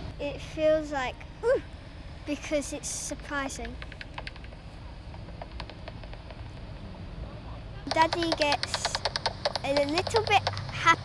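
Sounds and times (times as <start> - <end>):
bat detector clicks: 7.9 - 10.7.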